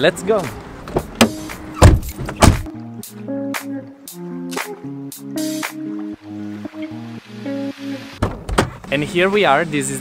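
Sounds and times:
background music: 0.0 - 8.2
car doors shutting: 0.8 - 2.7, 8.2 - 8.9.

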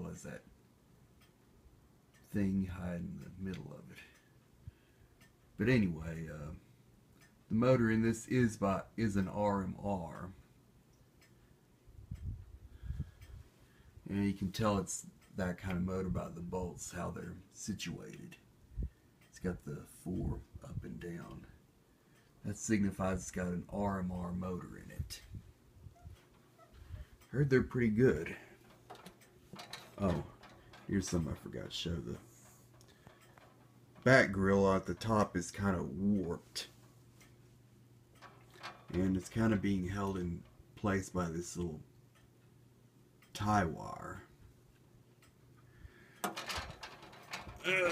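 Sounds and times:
low steady hum: 0.0 - 47.9
light clicks: 3.2 - 5.6, 20.3 - 37.5
man's voice: 30.0 - 30.3, 30.9 - 32.2, 34.0 - 36.7, 47.6 - 47.9.

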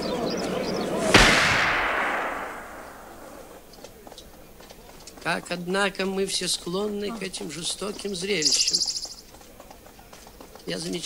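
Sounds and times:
gunshot with echo: 1.0 - 3.7.

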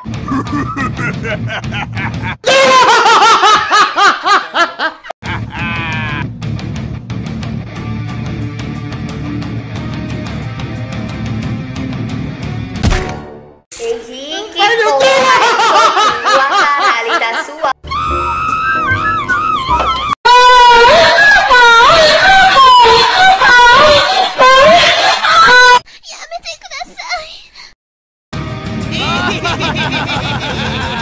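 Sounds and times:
high-pitched rapid laughter: 0.2 - 6.2, 15.0 - 25.8, 28.9 - 31.0
voice: 13.8 - 17.7, 26.0 - 27.6, 28.9 - 29.8.

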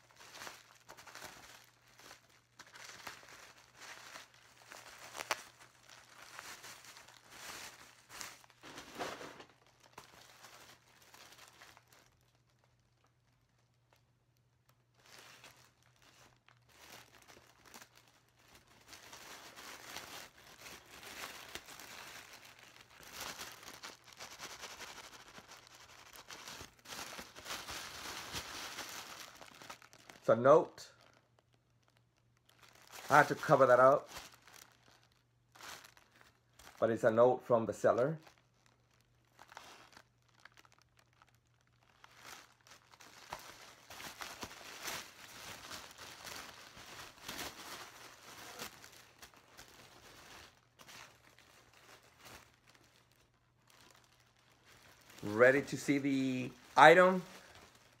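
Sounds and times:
package wrapping crinkling: 0.0 - 36.8, 38.2 - 58.0.

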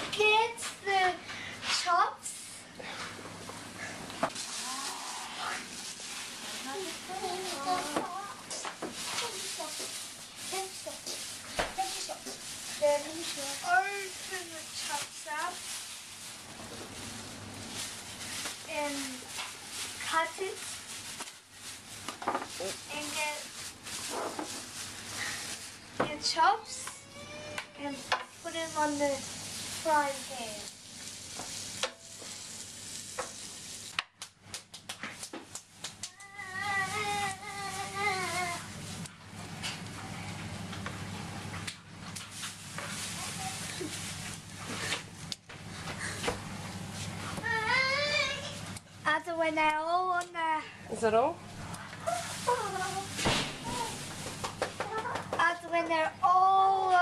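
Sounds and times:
children talking: 6.6 - 9.9, 47.4 - 50.7, 52.0 - 54.0
meat sizzling in frying pan: 27.9 - 34.0.

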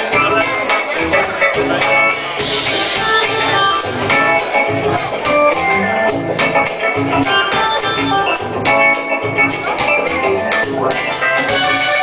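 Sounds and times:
organ keyboard chords: 0.0 - 12.0
reggae band playing: 0.0 - 12.0.

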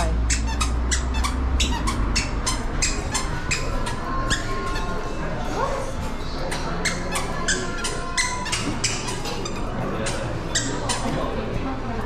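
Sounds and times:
squeaky sandals squeaking: 0.0 - 11.3.

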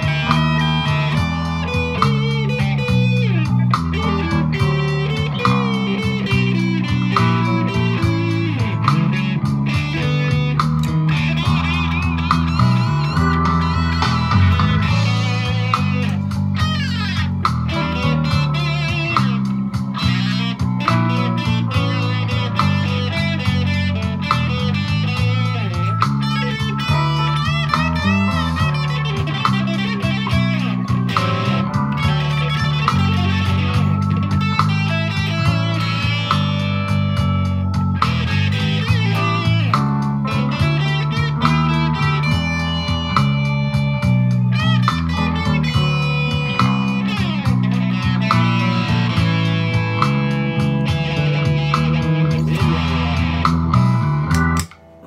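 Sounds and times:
electric guitar lead lines: 0.0 - 55.0.

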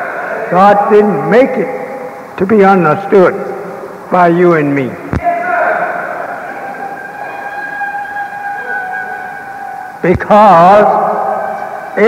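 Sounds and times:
high-pitched held tone: 6.4 - 10.7.

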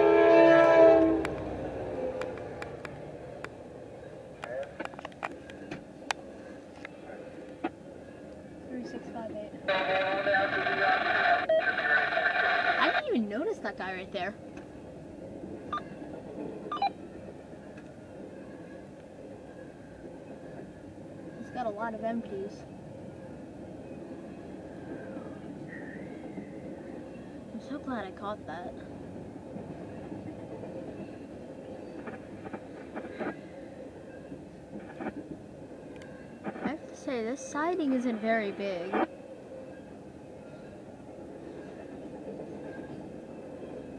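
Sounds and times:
freight train passing: 0.0 - 43.9.

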